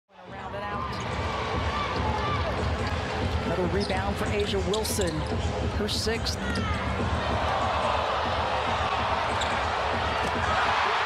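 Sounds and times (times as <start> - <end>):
crowd chatter: 0.1 - 11.0.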